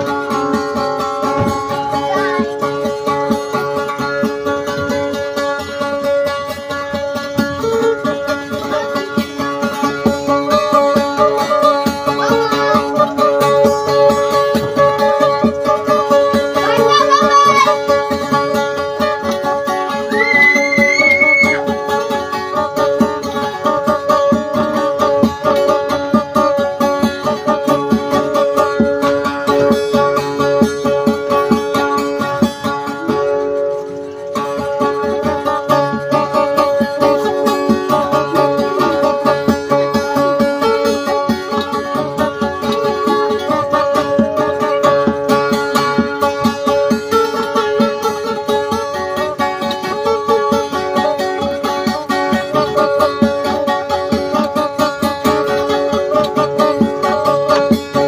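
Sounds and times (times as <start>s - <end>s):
acoustic guitar picking: 0.0s - 58.0s.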